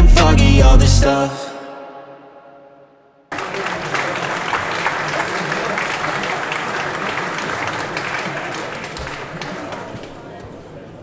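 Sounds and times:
audience applauding: 3.3s - 10.8s.

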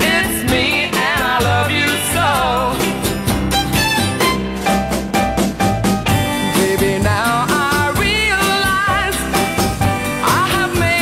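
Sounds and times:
woman singing pop song: 0.0s - 3.0s, 6.4s - 11.0s
band backing: 0.0s - 11.0s.

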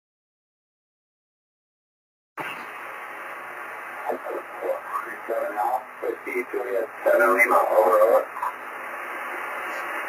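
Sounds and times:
radio hiss: 2.4s - 10.0s
person speaking over radio: 4.0s - 8.6s.

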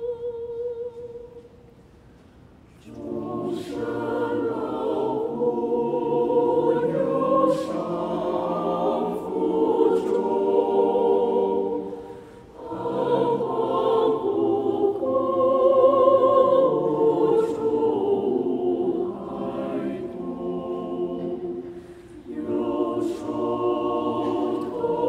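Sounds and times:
choir singing a hymn: 0.0s - 1.5s, 2.8s - 25.0s.

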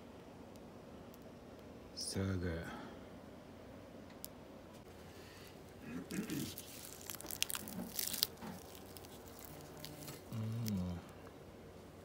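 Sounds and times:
charred skin crackling and tearing: 5.8s - 11.2s
person humming: 9.7s - 11.2s.

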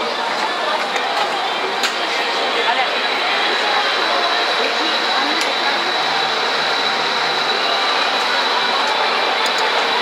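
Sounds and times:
ventilation blowers hissing: 0.0s - 10.0s
thin high whine: 2.1s - 10.0s.

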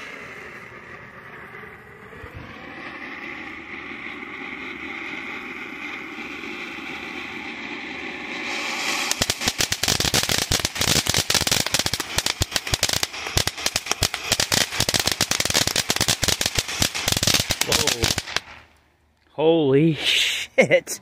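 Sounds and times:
firework fountain hissing and crackling: 0.0s - 19.0s.

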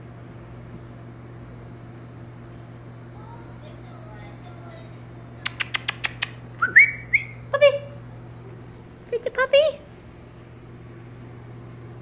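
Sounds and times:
kissing clicks: 5.4s - 7.4s
person whistling: 6.6s - 7.4s.

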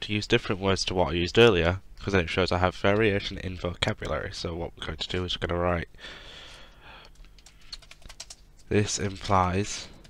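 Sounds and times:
computer keyboard typing: 7.0s - 9.2s.

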